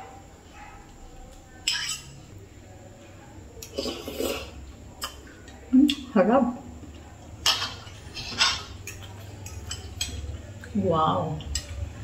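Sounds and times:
metal spoon scraping a bowl: 1.6s - 2.2s, 7.5s - 10.2s.

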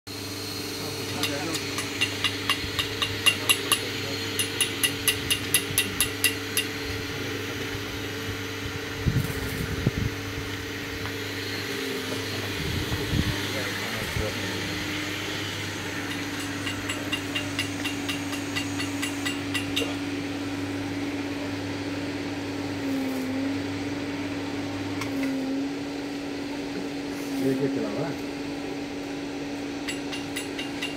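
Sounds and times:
stirrer motor hum: 0.1s - 30.9s.

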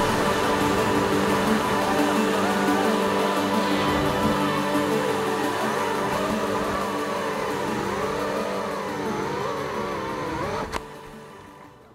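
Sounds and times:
quadcopter motors whining: 0.0s - 11.2s
background music: 0.0s - 11.9s.

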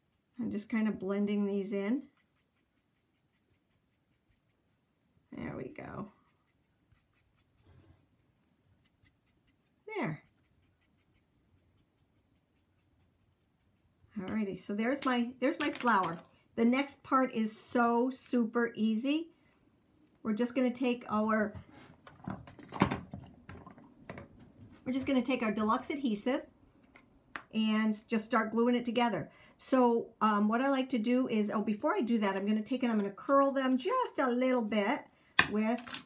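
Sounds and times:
marker strokes on cardstock: 2.0s - 5.0s, 5.9s - 14.2s.

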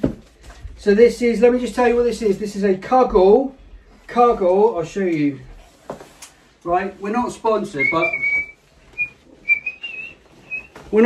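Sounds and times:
person whistling high notes: 7.8s - 10.8s.

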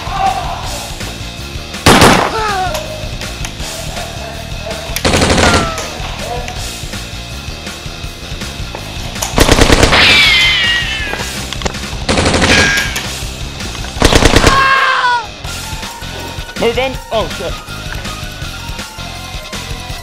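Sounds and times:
airsoft rifle automatic bursts: 5.0s - 5.6s, 9.4s - 10.0s, 12.1s - 12.6s, 14.0s - 14.7s.

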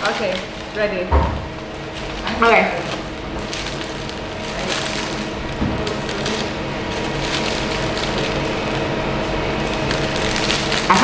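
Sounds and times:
low steady hum: 0.0s - 11.0s
plastic bag crinkling: 0.0s - 11.0s.

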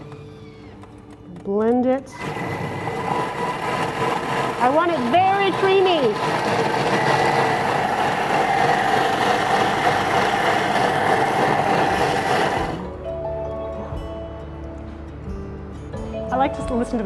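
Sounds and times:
kitchen blender running: 2.1s - 12.9s.

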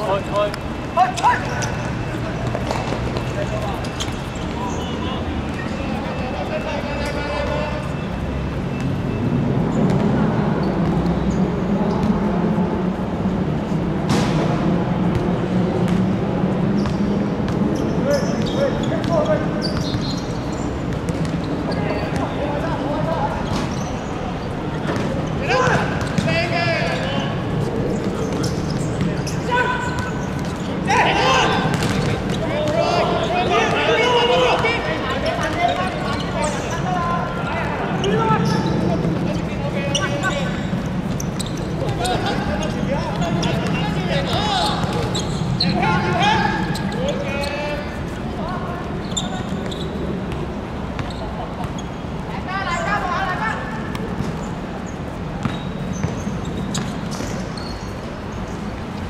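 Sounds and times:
players shouting: 0.0s - 8.1s, 21.7s - 50.3s.

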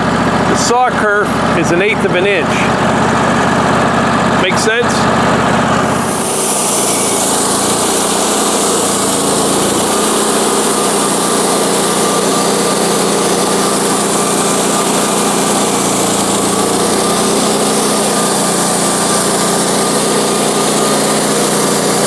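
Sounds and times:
sawmill engine running: 0.0s - 22.0s.

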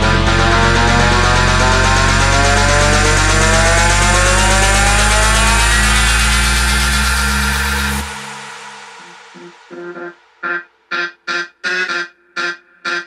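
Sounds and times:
buzzing synth riser: 0.0s - 13.0s
sustained bass: 0.0s - 13.0s.

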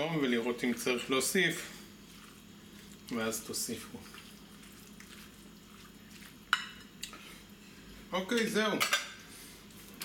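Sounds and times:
spatula stirring salad in bowl: 1.0s - 7.5s
spatula clinking on glass: 6.5s - 6.9s.

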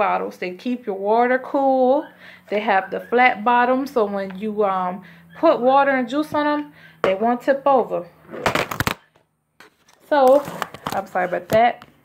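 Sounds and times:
phone handling rubbing and clattering: 8.3s - 11.7s.

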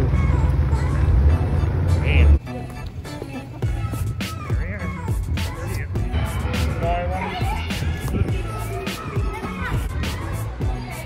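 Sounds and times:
car engine and exhaust: 0.0s - 8.7s
background music: 0.0s - 11.0s.

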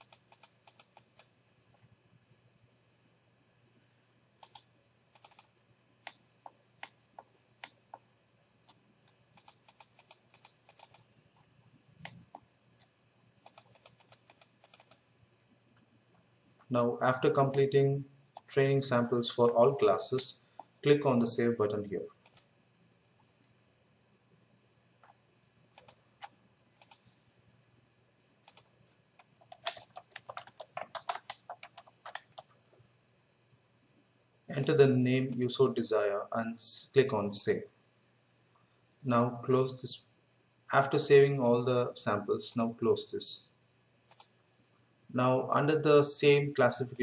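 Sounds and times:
scroll wheel ticking: 0.0s - 1.3s, 4.4s - 5.5s, 9.1s - 11.1s, 13.4s - 15.0s, 25.8s - 26.0s, 26.8s - 27.1s, 28.5s - 32.2s
computer mouse clicking: 0.0s - 1.4s, 4.4s - 8.0s, 8.6s - 11.1s, 12.0s - 15.0s, 22.2s - 22.6s, 25.8s - 27.2s, 28.4s - 32.6s, 44.1s - 44.4s.

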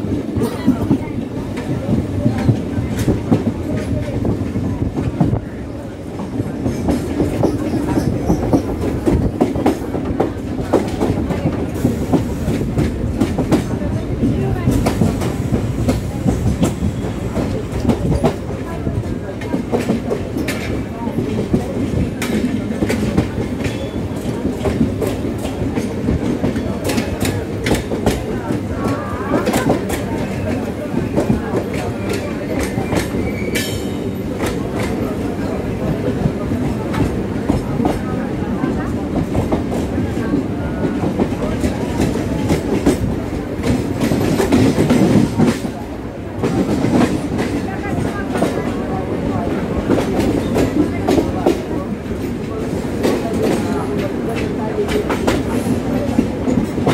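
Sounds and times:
train wheels clattering over joints: 6.2s - 48.9s.

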